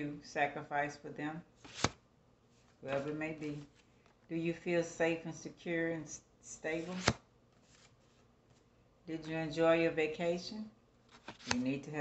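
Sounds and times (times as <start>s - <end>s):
faint paper rustling: 1.6s - 4.2s, 6.8s - 9.4s, 11.0s - 11.8s.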